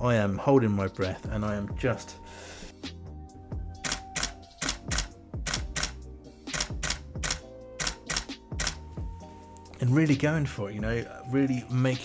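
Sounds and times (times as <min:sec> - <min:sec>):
camera shutter clicks: 0:03.8 - 0:08.8.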